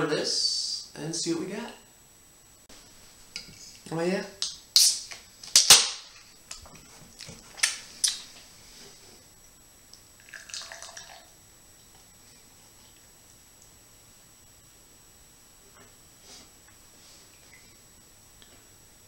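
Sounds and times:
beer pouring into a glass: 10.2 - 11.4.

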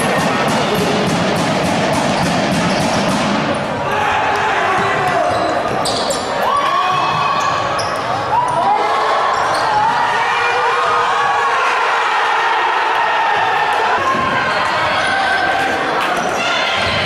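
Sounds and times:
players' voices: 0.0 - 17.0
shoes squeaking on court: 5.0 - 6.7, 7.3 - 8.6, 9.3 - 9.9.

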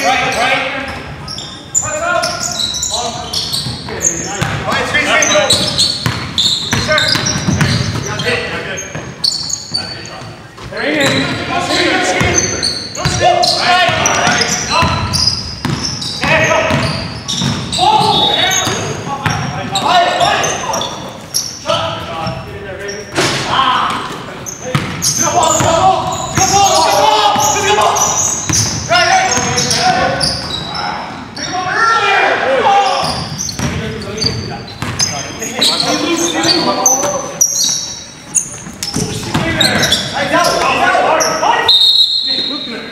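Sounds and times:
players calling out: 0.0 - 42.9
basketball bouncing on hardwood: 6.0 - 8.1, 38.9 - 39.9.

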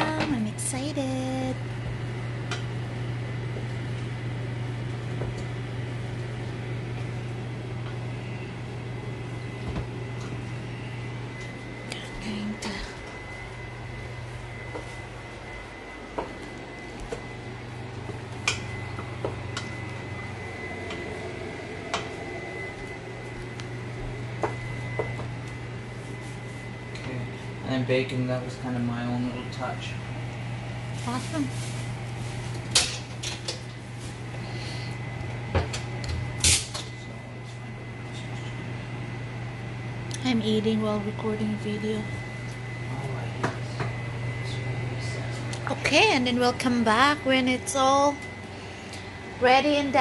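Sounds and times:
kitchen appliance humming: 0.0 - 50.0
faint high whine: 18.4 - 25.3.

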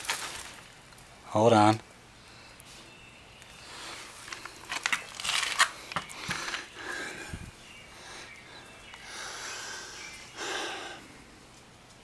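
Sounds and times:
rustling in grass and dry leaves: 0.0 - 1.7, 2.3 - 7.8.

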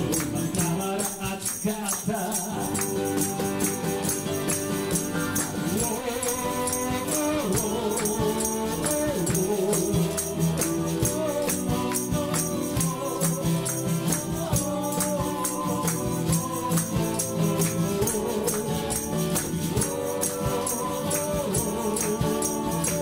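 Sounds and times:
man singing lead: 0.0 - 4.2, 5.0 - 23.0
men singing in chorus: 0.0 - 4.3, 4.9 - 23.0
shaker beat: 0.0 - 23.0
strummed acoustic guitar: 0.0 - 23.0.

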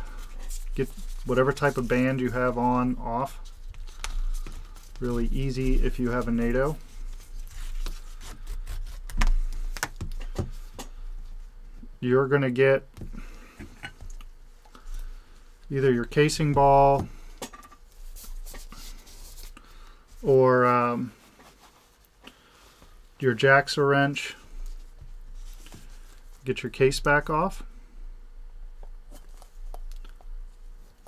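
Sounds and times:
soft rubs: 0.0 - 9.8, 13.2 - 23.2, 24.4 - 26.5.

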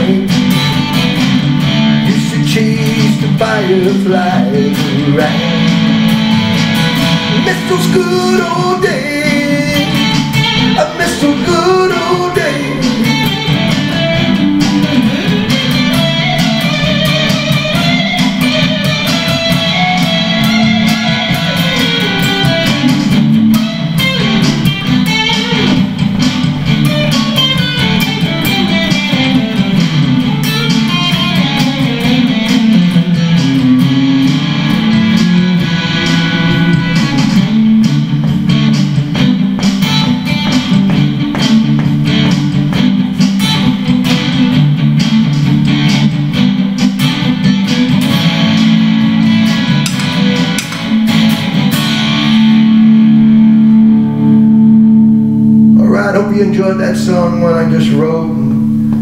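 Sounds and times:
electric guitar quickly picked notes: 0.0 - 59.0.

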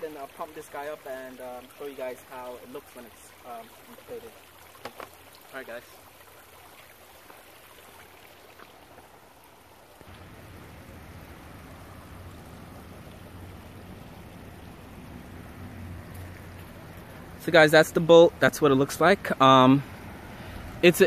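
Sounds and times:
faint outdoor hiss: 0.0 - 21.0
low hum: 10.1 - 17.4.

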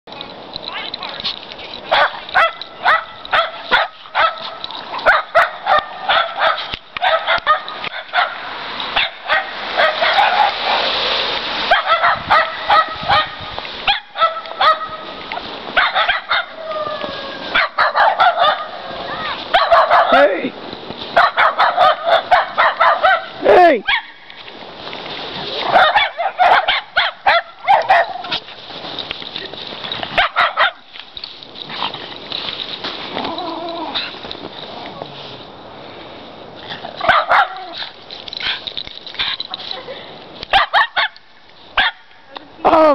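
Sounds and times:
dogs barking and yipping: 0.1 - 20.3, 21.1 - 24.3, 25.5 - 34.8, 36.8 - 42.2
dog yelp: 1.9 - 8.4, 11.7 - 14.9, 15.8 - 20.2, 23.9 - 24.2, 25.7 - 28.3, 30.2 - 30.8, 37.0 - 37.8, 40.5 - 41.2, 41.8 - 42.0.

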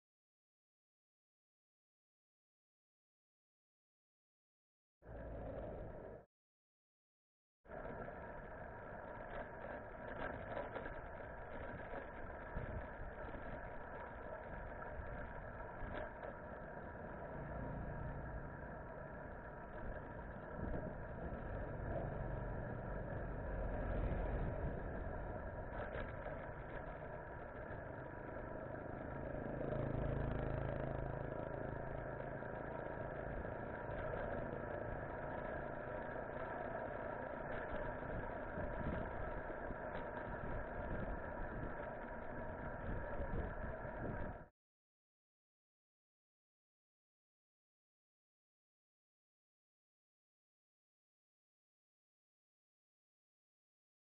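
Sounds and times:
bicycle road and wind noise: 5.0 - 6.3, 7.7 - 44.5.

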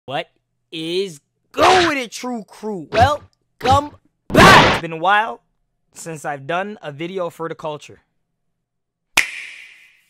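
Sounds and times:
sharp clap-like hit: 9.2 - 10.0.

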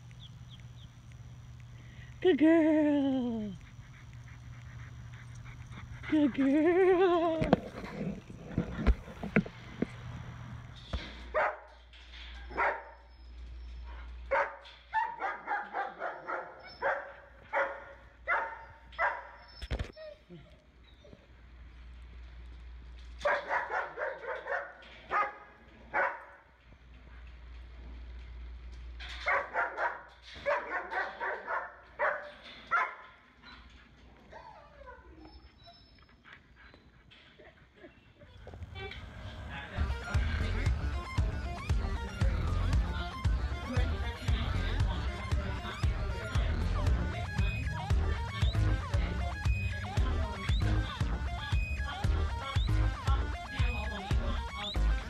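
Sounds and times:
dog barking: 11.3 - 11.8, 12.5 - 13.1, 14.3 - 19.6, 23.2 - 26.4, 29.1 - 33.2.

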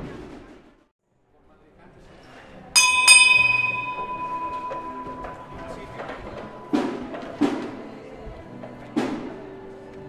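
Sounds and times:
hand bell ringing: 2.8 - 7.6.

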